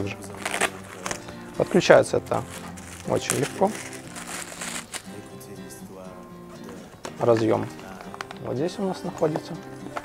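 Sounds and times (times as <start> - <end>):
plastic bag crinkling: 0.0 - 5.2, 7.3 - 8.4
background music: 0.0 - 10.0.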